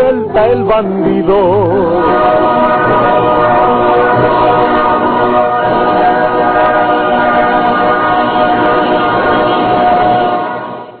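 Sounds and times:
group of voices singing: 0.0s - 10.5s.

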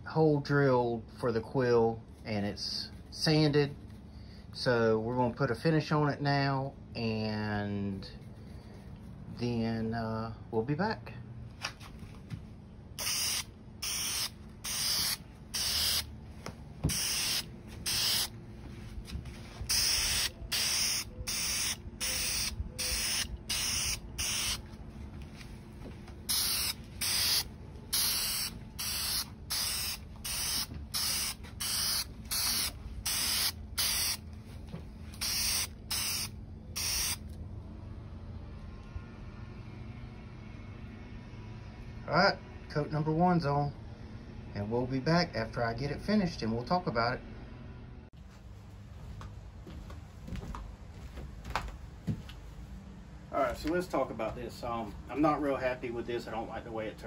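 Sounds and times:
faint steady hum: 0.8s - 42.7s
spray gun hissing bursts: 13.0s - 16.1s, 16.9s - 18.4s, 19.6s - 24.6s, 26.2s - 34.2s, 35.2s - 37.2s.

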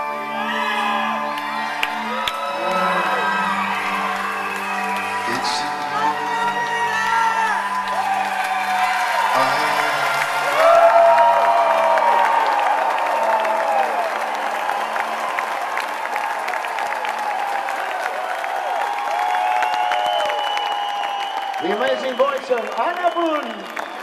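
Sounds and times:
crowd applauding and cheering: 0.0s - 24.0s.

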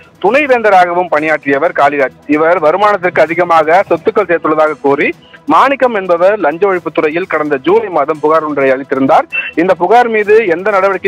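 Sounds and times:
background music: 0.0s - 11.0s
news speech: 0.0s - 11.0s.

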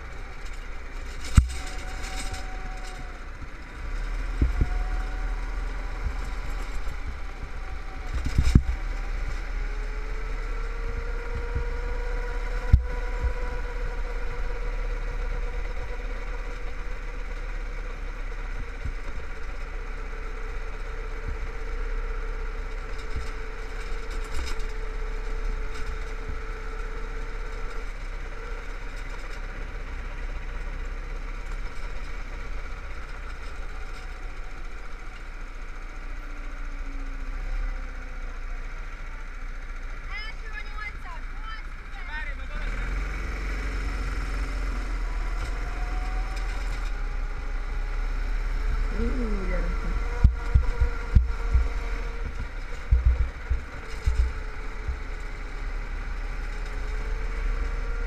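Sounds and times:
go-kart engine running: 0.0s - 58.0s.

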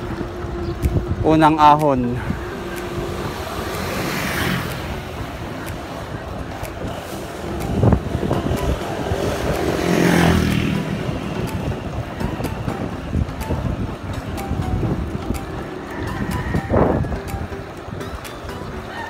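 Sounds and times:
vehicle passing: 0.0s - 18.6s
wind buffeting microphone: 0.0s - 18.9s.

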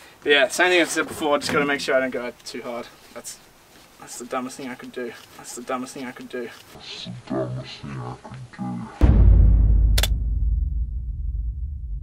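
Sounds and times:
sharp crack: 9.0s - 10.8s
deep low boom: 9.0s - 12.0s.

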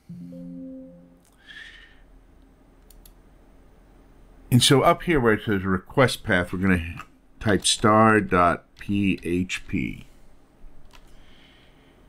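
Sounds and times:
soft breath: 1.3s - 2.1s, 11.0s - 12.0s
faint mouse clicks: 2.4s - 3.2s.

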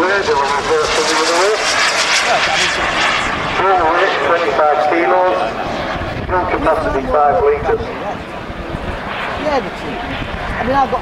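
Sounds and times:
commentator speaking: 0.0s - 8.2s
model jet turbine engines: 0.0s - 11.0s.

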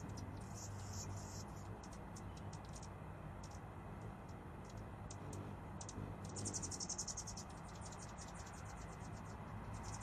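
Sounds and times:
hummingbird chattering: 0.0s - 10.0s
low steady hum: 0.0s - 10.0s.

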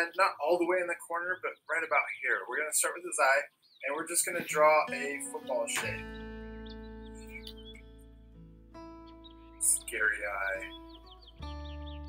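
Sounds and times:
soft music of sustained notes: 4.8s - 12.0s.

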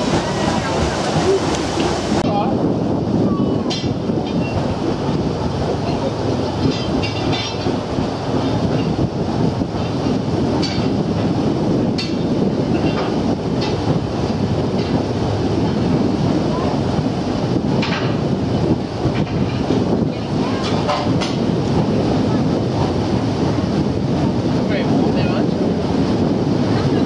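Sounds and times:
paddle wheels churning: 0.0s - 27.0s.

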